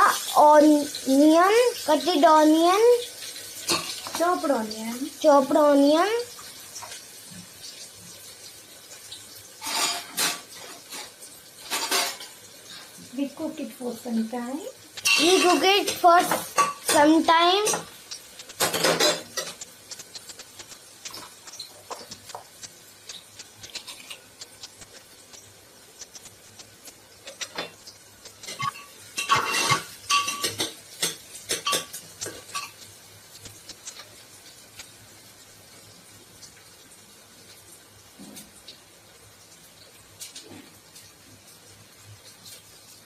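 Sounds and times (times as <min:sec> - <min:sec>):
metal spoon stirring in a pan: 0:09.6 - 0:13.0, 0:14.8 - 0:34.9.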